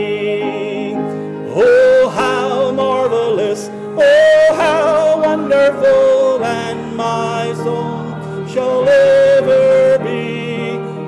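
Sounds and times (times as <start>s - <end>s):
instrumental accompaniment: 0.0s - 11.0s
man singing gospel song: 0.0s - 11.0s.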